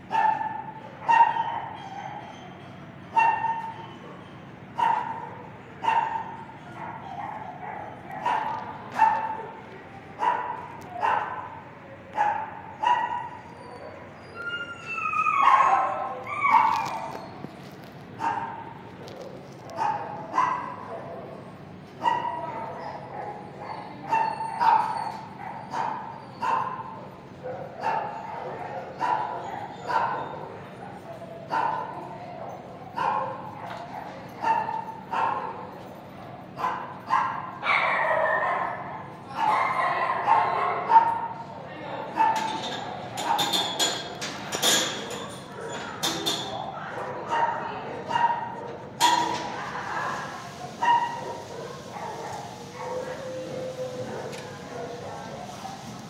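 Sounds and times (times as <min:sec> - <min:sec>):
dogs barking: 0:00.0 - 0:41.5, 0:42.1 - 0:56.0
dog yelping: 0:00.1 - 0:04.1, 0:12.2 - 0:17.5, 0:22.0 - 0:26.9.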